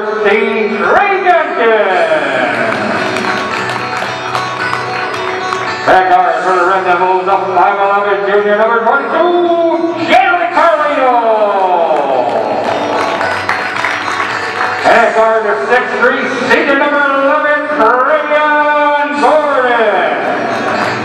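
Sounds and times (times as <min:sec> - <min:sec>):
announcer over loudspeakers: 0:00.0 - 0:03.2, 0:05.8 - 0:12.9, 0:14.8 - 0:20.6.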